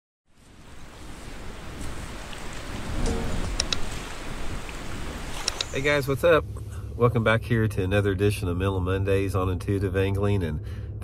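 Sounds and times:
rushing surf-like noise: 0.4 - 6.2
mouse clicks: 5.4 - 5.8.

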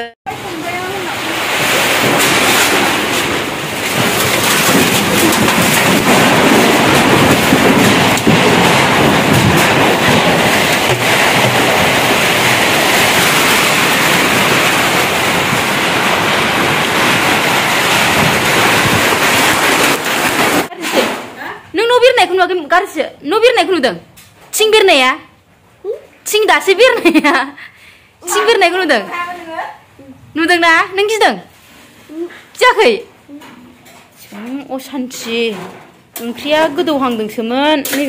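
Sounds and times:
rain and wind rushing: 0.3 - 20.7.

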